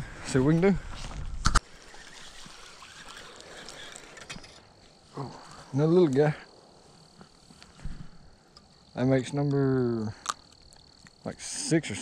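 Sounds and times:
high insect trill: 0:00.0 - 0:12.0.

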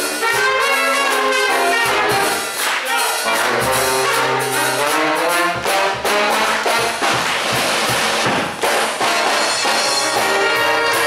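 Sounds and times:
cymbals and kick drum: 0:00.0 - 0:11.0
jazz big band: 0:00.0 - 0:11.0.

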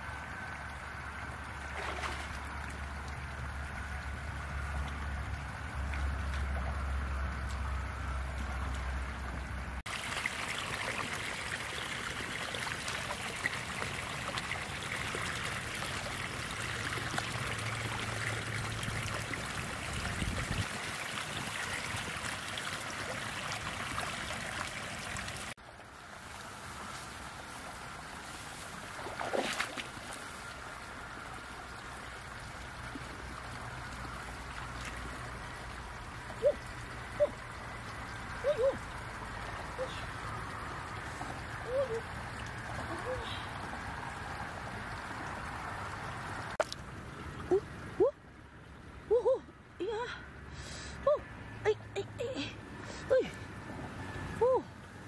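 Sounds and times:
stream water trickling: 0:00.0 - 0:50.6, 0:51.3 - 0:55.0
water splash: 0:01.6 - 0:02.9, 0:28.5 - 0:30.6.

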